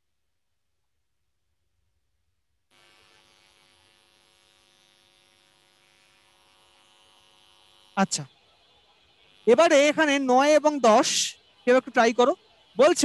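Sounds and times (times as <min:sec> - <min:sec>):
faint electrical hum and buzz: 0:00.0 - 0:13.0.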